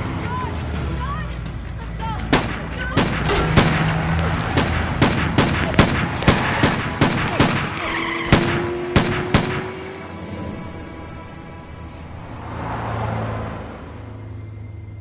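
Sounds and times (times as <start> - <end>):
sharp gunshots: 2.3 - 9.9.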